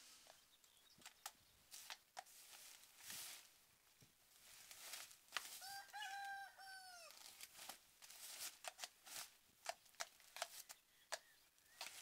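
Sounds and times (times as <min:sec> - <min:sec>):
faint rooster crowing: 0:05.5 - 0:07.2.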